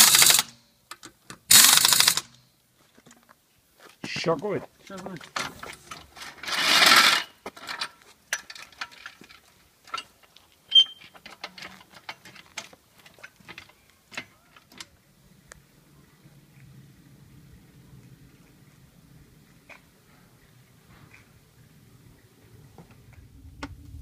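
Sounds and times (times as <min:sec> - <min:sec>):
pneumatic impact wrench burst: 0:00.0 - 0:00.6, 0:01.5 - 0:02.3.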